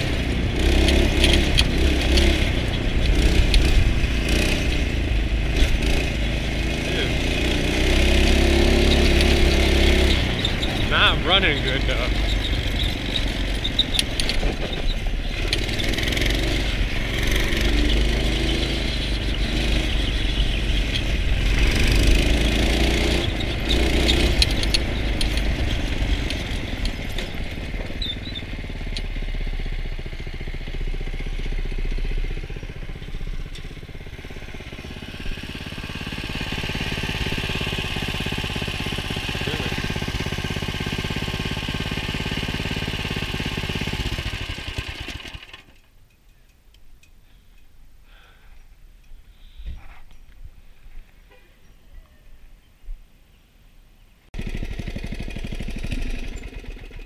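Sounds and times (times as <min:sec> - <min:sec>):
small petrol engine running roughly: 0:00.0 - 0:45.9, 0:54.4 - 0:57.0.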